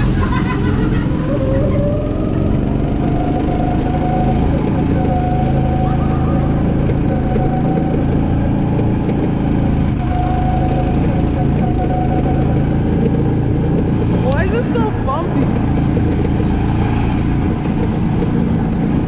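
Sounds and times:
go-kart engine running: 0.0 - 19.0.

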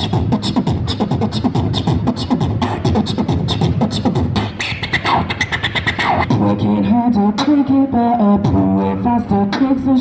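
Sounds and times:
beatboxing through loudspeaker: 0.0 - 10.0.

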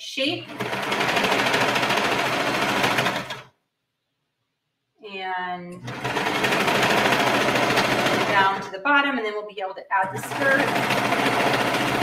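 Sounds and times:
overlocker stitching fabric: 0.4 - 3.5, 5.8 - 8.7, 10.0 - 12.0.

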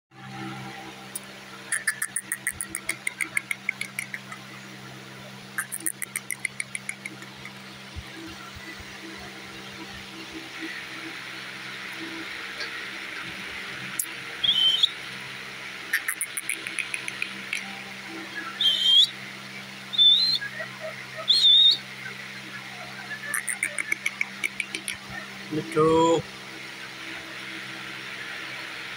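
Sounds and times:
parakeet whistle-like calls: 0.4 - 13.1, 13.8 - 26.3
parakeet chattering: 1.6 - 4.6, 5.5 - 7.6, 15.8 - 17.8, 18.5 - 19.1, 20.0 - 21.8, 22.6 - 25.8.

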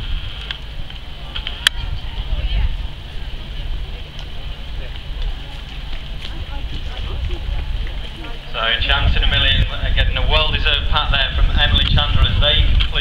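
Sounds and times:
faint voices: 0.0 - 13.0
wind buffeting microphone: 0.0 - 13.0.

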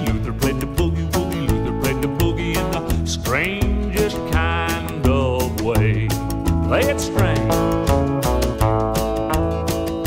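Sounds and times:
guitar-led country boogie band: 0.0 - 10.0.

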